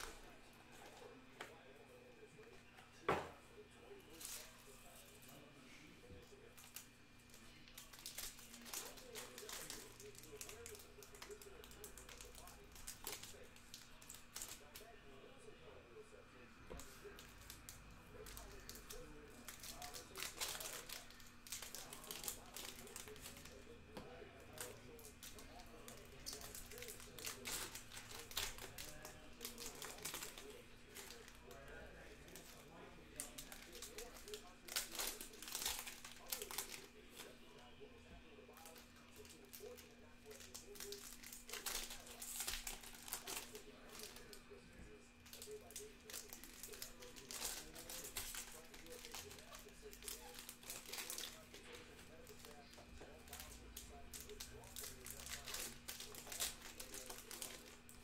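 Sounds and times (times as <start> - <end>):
foil wrappers crinkling and tearing: 3.8 - 5.4, 6.1 - 15.0, 16.7 - 37.8, 38.4 - 58.0.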